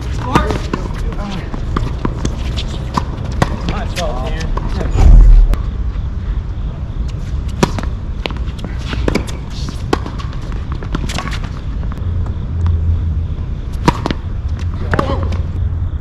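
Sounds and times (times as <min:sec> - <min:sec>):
tennis balls struck by racquets: 0:00.0 - 0:04.8, 0:07.5 - 0:12.0, 0:13.7 - 0:15.6
tennis balls bouncing on hard court: 0:00.0 - 0:04.9, 0:07.5 - 0:12.8, 0:13.7 - 0:15.6.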